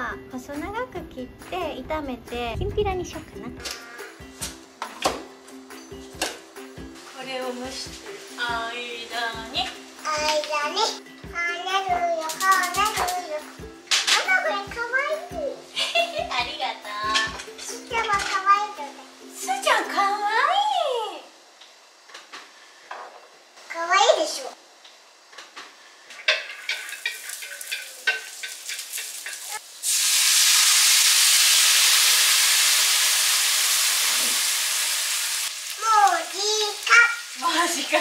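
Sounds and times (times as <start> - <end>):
background music: 0.0 - 21.3.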